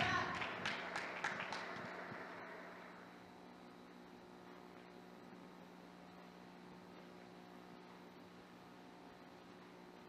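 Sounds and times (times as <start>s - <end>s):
quiet hall ambience: 0.0s - 10.0s.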